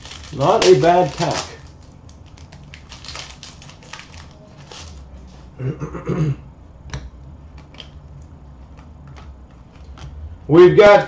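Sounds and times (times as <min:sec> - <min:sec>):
cards clicking and rustling: 0:00.0 - 0:05.0, 0:06.9 - 0:10.2
low steady hum: 0:00.0 - 0:11.0.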